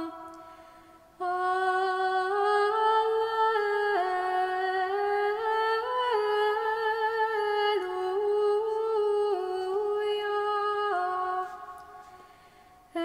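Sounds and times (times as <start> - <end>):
woman singing chant: 0.0 - 12.2.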